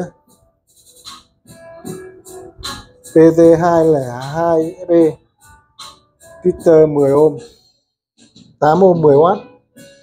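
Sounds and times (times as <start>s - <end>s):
faint guitar music: 0.0s - 10.0s.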